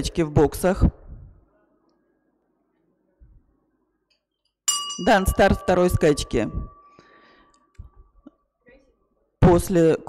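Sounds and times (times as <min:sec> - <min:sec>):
starting-gate bell ringing: 0:04.7 - 0:07.3.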